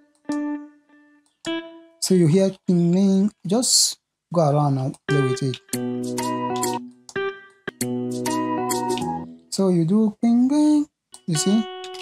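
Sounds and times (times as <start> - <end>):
electric guitar single notes: 0.0 - 2.2, 5.0 - 9.5, 11.2 - 12.0.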